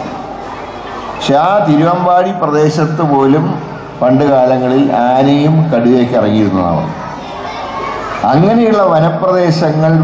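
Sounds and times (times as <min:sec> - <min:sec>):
children chattering in a hall: 0:00.0 - 0:10.0
man speaking over loudspeakers: 0:01.2 - 0:07.1, 0:08.2 - 0:10.0.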